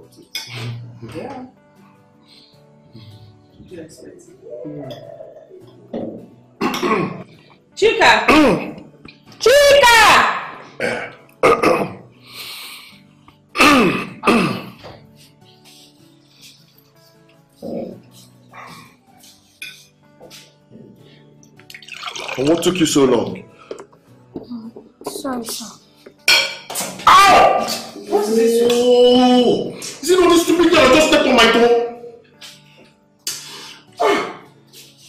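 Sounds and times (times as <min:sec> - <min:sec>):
dishes and cutlery clinking: 0:00.0 - 0:01.4, 0:19.1 - 0:20.6, 0:21.6 - 0:28.0
man coughing hard: 0:06.6 - 0:07.2, 0:10.8 - 0:12.0, 0:13.5 - 0:14.8, 0:34.0 - 0:34.5
wheezing breath: 0:15.1 - 0:17.2, 0:32.6 - 0:34.1.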